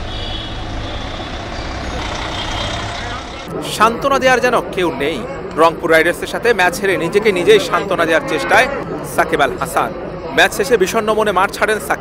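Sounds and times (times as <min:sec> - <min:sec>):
bus engine rumbling: 0:00.0 - 0:12.0.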